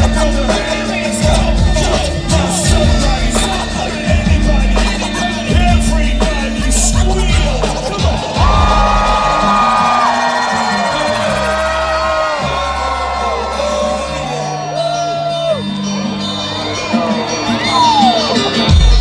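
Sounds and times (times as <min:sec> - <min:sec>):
live hip hop music: 0:00.0 - 0:19.0
crowd cheering and whooping: 0:08.1 - 0:19.0.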